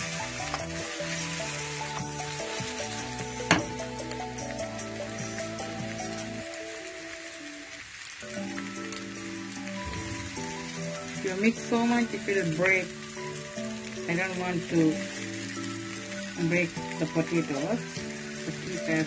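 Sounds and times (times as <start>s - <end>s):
potatoes sizzling in oil: 0.0s - 19.0s.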